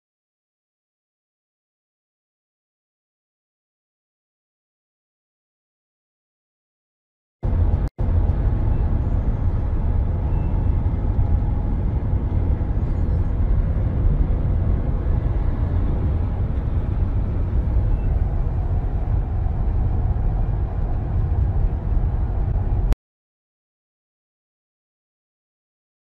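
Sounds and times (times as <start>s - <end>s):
road and engine rumble inside bus: 7.4s - 23.0s.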